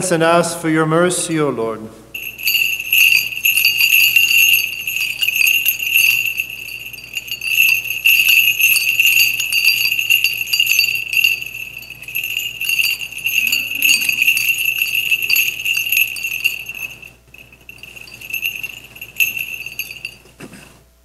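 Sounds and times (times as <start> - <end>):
censer bells jingling: 2.1 - 20.4.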